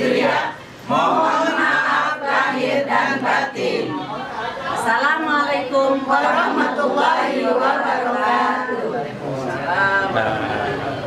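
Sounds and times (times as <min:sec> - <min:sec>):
overlapping voices: 0:00.0 - 0:04.9.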